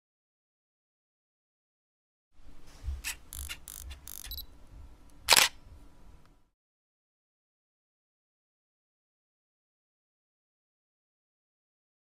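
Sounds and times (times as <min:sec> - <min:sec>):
camera clicks and whirs: 0:03.0 - 0:04.5, 0:05.2 - 0:05.6
loud shutter click: 0:05.3 - 0:05.6.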